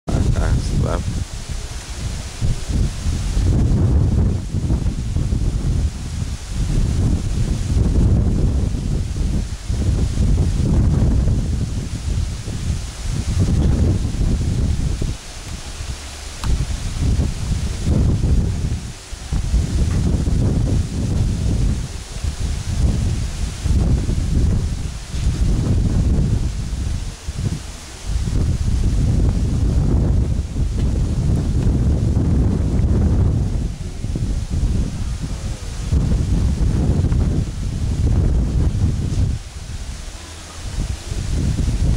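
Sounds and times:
wind buffeting microphone: 0.1s - 41.9s.

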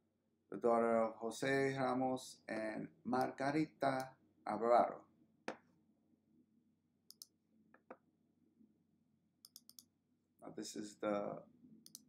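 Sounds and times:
computer mouse clicks: 7.1s - 8.0s, 9.4s - 9.9s.

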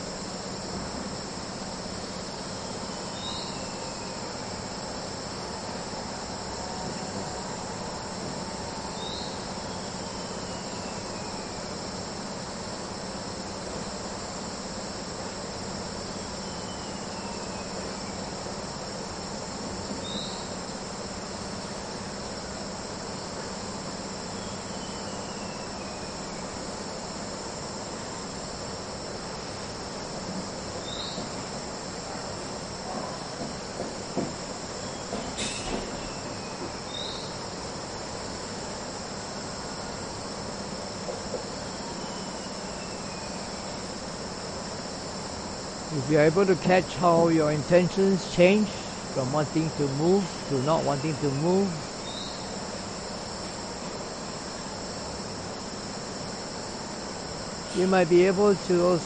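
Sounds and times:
insects chirring: 0.0s - 59.0s.

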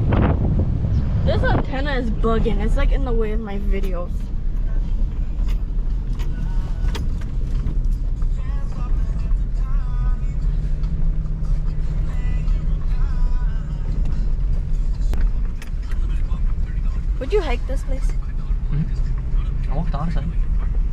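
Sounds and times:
truck engine and road rumble: 0.0s - 20.9s.

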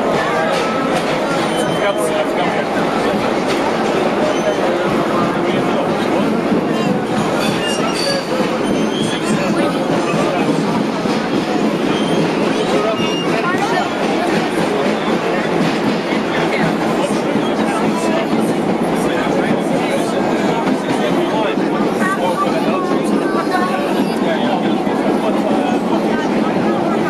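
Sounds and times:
subway train rumbling in tunnel: 0.0s - 27.0s.

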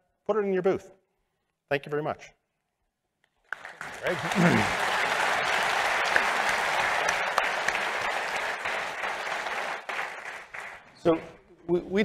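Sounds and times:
audience applauding: 3.4s - 11.0s.

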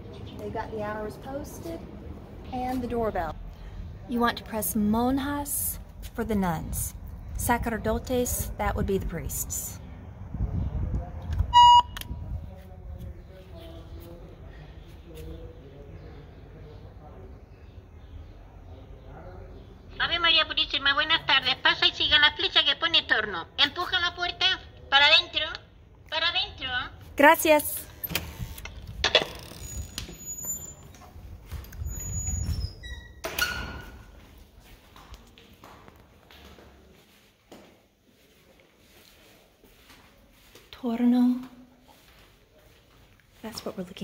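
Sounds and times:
intercom electronic beep: 11.5s - 12.1s
door hinge squeaks: 28.0s - 31.0s, 31.8s - 34.0s.

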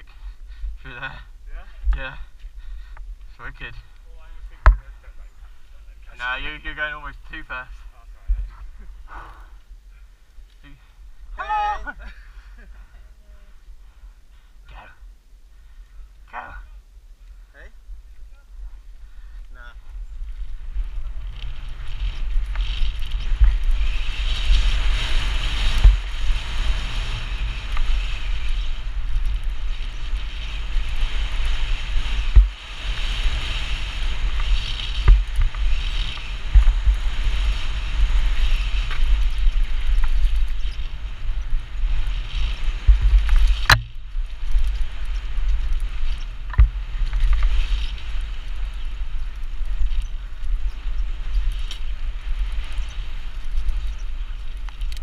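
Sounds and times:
bike tyres rolling on dirt trail: 0.0s - 55.0s
wind buffeting microphone: 0.0s - 55.0s
bike knocks and rattles: 42.3s - 48.3s.

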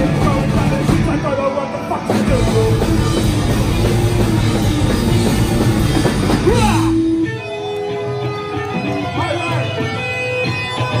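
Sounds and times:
drums: 0.0s - 11.0s.

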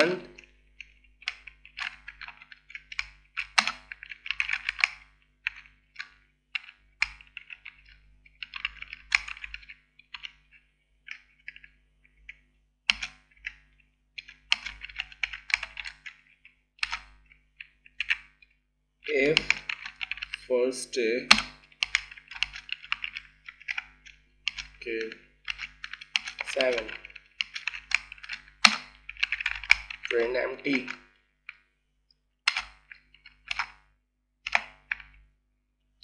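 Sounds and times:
typing on computer keyboard: 0.0s - 18.4s, 19.0s - 20.4s, 21.3s - 31.6s, 32.5s - 35.2s.

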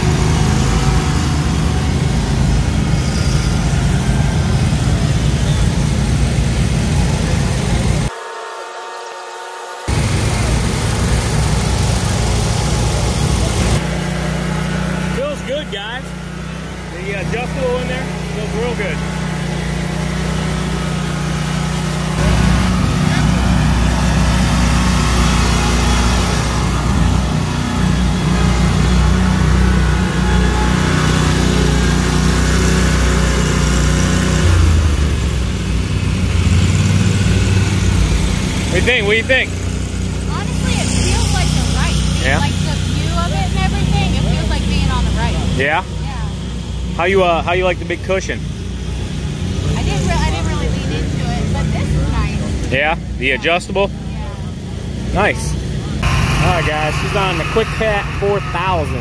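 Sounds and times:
mower engine humming: 0.0s - 59.0s.

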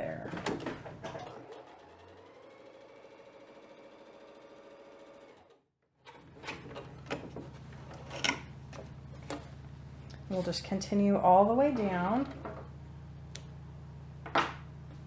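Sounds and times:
sewing machine stitching: 1.0s - 7.2s.

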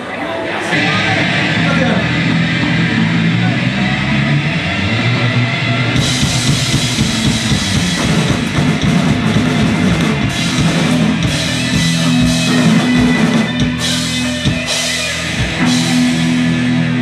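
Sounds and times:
live punk rock band: 0.0s - 17.0s.

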